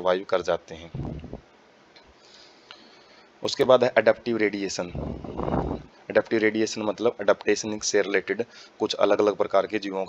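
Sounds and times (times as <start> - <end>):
man talking: 0.0 - 1.4, 3.4 - 10.0
room hiss: 0.0 - 10.0.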